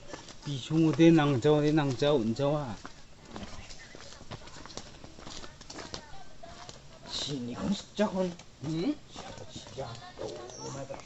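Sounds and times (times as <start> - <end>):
footsteps on dirt path: 0.0 - 11.0.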